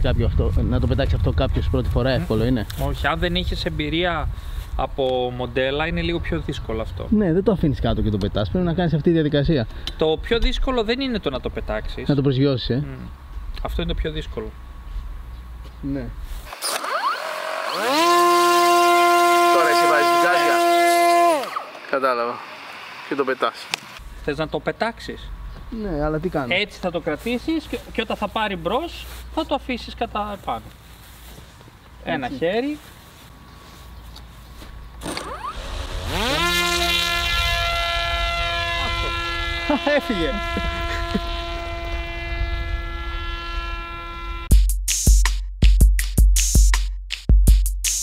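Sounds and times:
electric motor and propeller whine: 0:16.4 - 0:24.1, 0:34.9 - 0:44.5.

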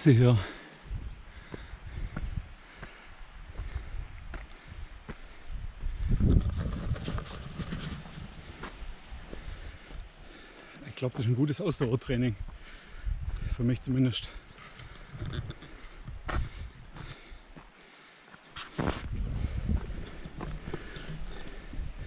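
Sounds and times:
heavy breathing: 0:00.3 - 0:06.2, 0:07.6 - 0:11.1, 0:12.4 - 0:13.7, 0:14.3 - 0:22.0
wind buffeting microphone: 0:00.8 - 0:10.3, 0:12.0 - 0:13.7, 0:14.8 - 0:17.3, 0:18.9 - 0:22.0
footsteps on wet trail: 0:01.3 - 0:22.0.

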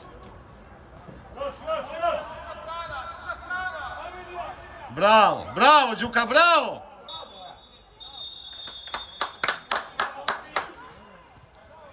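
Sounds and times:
voices shouting outdoors: 0:01.4 - 0:09.0.

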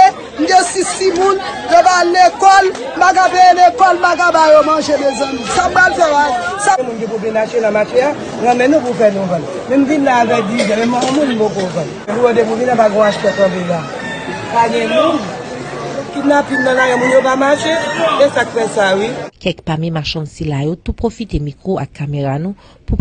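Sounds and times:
background chatter: 0:00.0 - 0:19.4
woman talking: 0:19.3 - 0:23.0.

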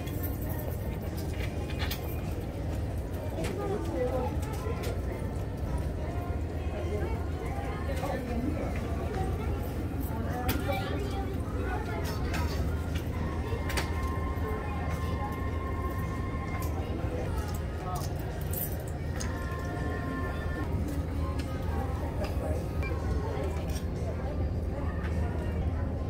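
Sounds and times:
indistinct voices: 0:00.0 - 0:26.0.

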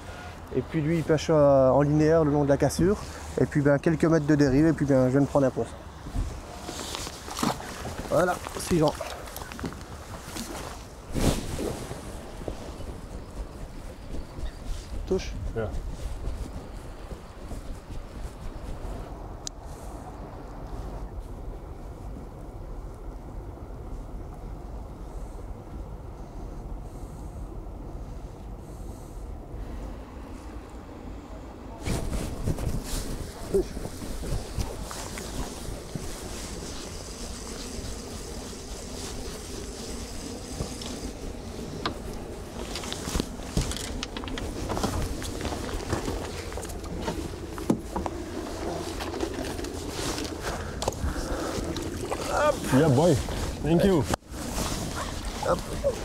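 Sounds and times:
wind rumble on microphone: 0:04.4 - 0:56.0.

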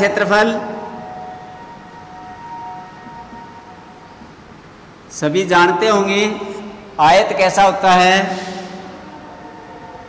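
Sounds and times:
low room noise: 0:00.0 - 0:10.0
two-note high tone: 0:00.5 - 0:04.6.

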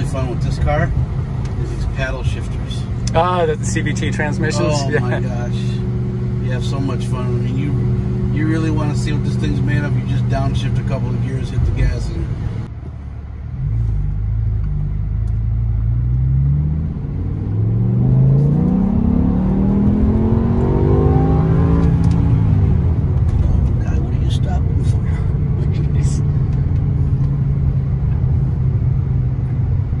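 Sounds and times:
car engine accelerating hard: 0:00.0 - 0:12.7, 0:13.6 - 0:30.0.

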